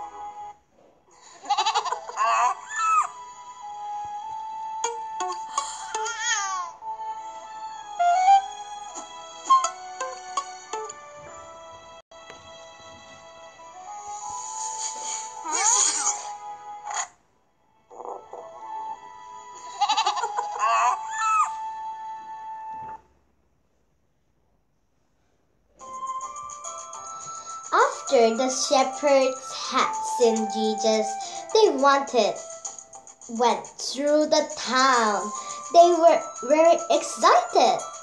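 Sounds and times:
soft background music: 0:00.0 - 0:23.3, 0:25.7 - 0:38.0
quavering cartoon animal bleat: 0:01.4 - 0:02.0, 0:19.8 - 0:20.3.

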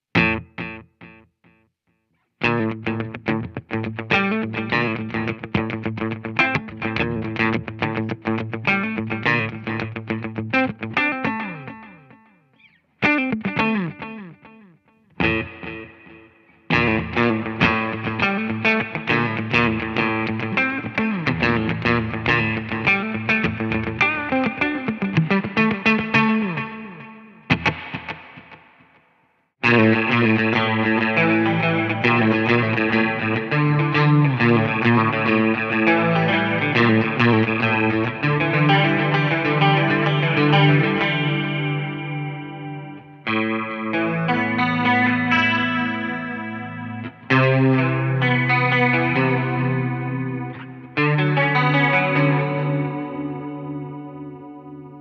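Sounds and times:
distorted electric guitar with effects: 0:00.0 - 0:55.0.

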